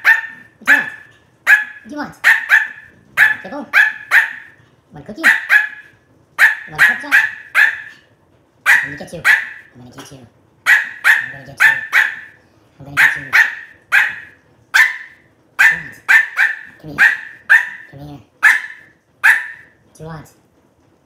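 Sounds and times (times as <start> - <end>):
small dog barking: 0.0 - 4.6, 5.2 - 8.0, 8.7 - 9.7, 10.7 - 12.4, 13.0 - 19.8.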